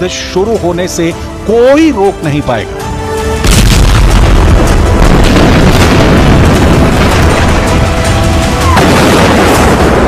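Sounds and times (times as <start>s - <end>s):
background music with held tones: 0.0s - 5.5s
loud boom with deep rumble: 3.4s - 8.1s, 8.7s - 10.0s.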